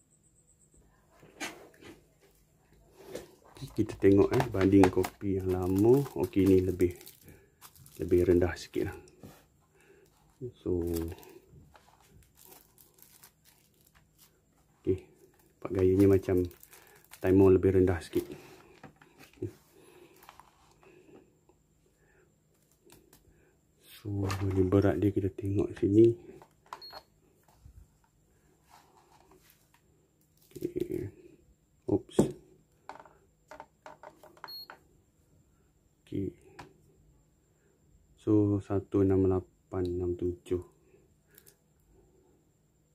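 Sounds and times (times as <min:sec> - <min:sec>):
plastic film crinkling: 0:03.5 - 0:09.0, 0:10.8 - 0:14.4, 0:15.3 - 0:18.6.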